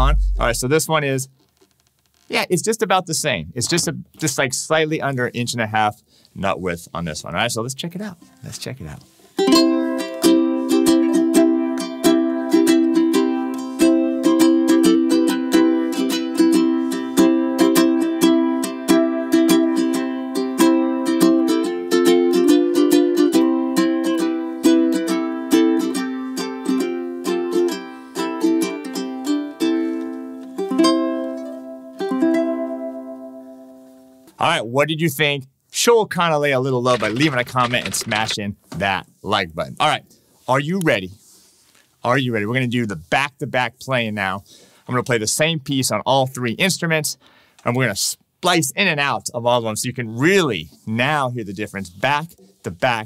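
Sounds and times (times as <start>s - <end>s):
ukulele strumming chords: 0.0s - 0.7s, 9.4s - 34.1s.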